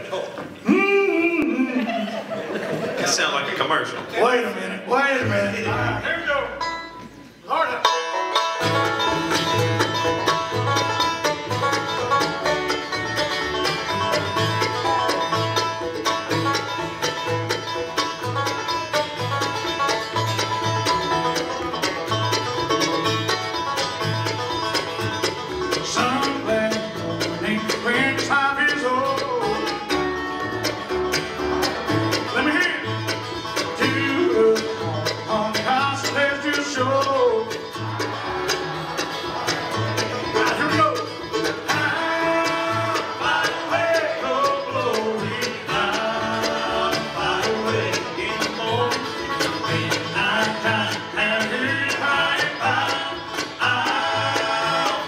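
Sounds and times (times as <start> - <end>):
bluegrass band playing: 0.0 - 55.0
sliding guitar notes: 5.2 - 55.0.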